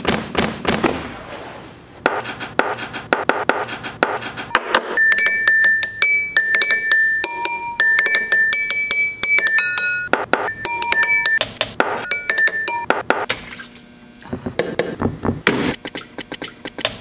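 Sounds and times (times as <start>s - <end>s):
ceramic cups struck with sticks: 4.6s - 13.0s.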